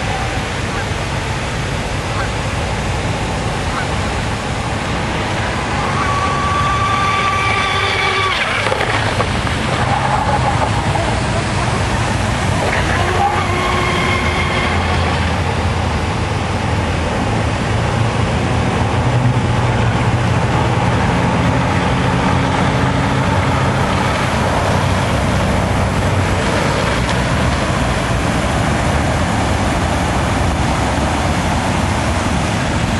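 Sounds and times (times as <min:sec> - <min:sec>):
model boat engine droning: 0:00.0 - 0:32.9.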